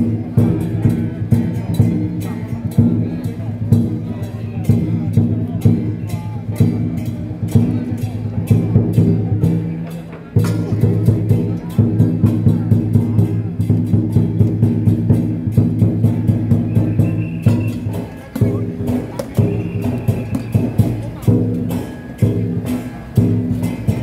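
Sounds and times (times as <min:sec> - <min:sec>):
cymbals clashing: 0:00.0 - 0:24.0
drum beating fast: 0:00.0 - 0:24.0.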